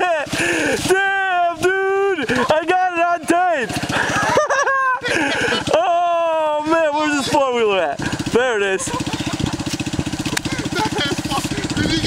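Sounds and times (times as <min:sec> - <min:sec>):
people laughing loudly: 0:00.0 - 0:11.8
quad bike engine running: 0:00.0 - 0:12.0.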